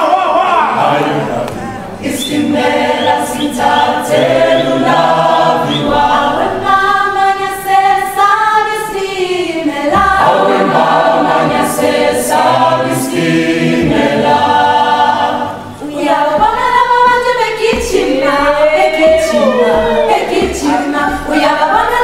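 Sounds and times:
choir singing unaccompanied: 0:00.0 - 0:22.0.

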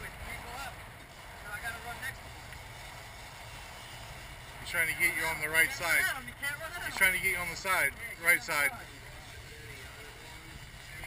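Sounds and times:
boat engine low rumble: 0:00.0 - 0:11.0
wind: 0:00.0 - 0:11.0.

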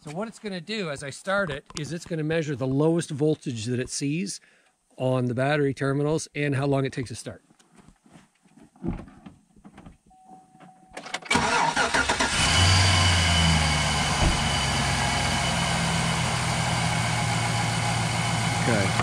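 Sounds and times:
car starter cranking: 0:11.0 - 0:15.0
car engine idling: 0:11.4 - 0:19.0.

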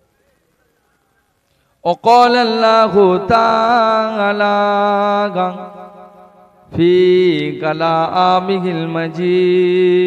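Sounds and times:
man chanting into a microphone: 0:01.8 - 0:10.0.

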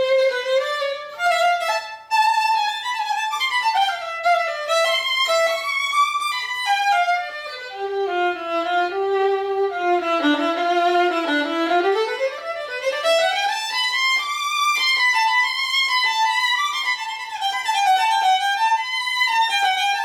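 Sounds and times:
bowed violin melody: 0:00.0 - 0:20.0.

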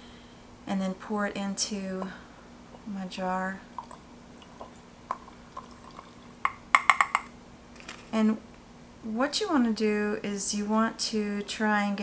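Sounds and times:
plastic cup tapping glass jar: 0:06.4 - 0:07.3.

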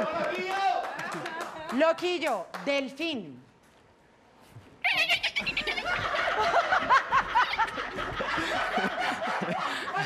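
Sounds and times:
high-pitched laughter: 0:04.8 - 0:08.9.

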